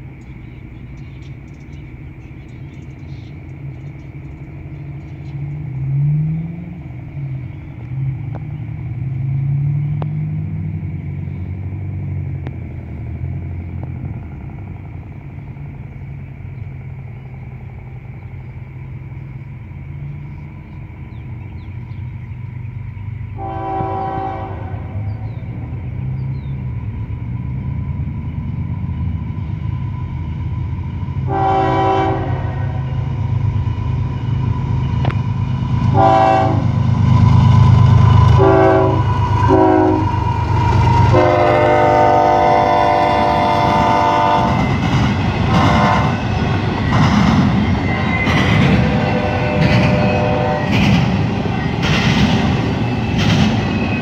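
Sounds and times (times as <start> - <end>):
diesel locomotive engine rumble: 0.0 - 54.0
engine rising and falling in pitch: 4.7 - 15.5
locomotive air horn blasts: 23.4 - 25.2, 31.3 - 33.1, 35.8 - 36.8, 38.2 - 40.1, 41.1 - 44.7, 45.5 - 46.2, 48.8 - 50.8.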